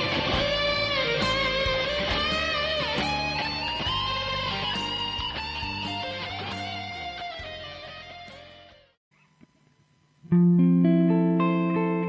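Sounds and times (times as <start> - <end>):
electric guitar lead: 0.0 - 9.0, 10.3 - 12.0.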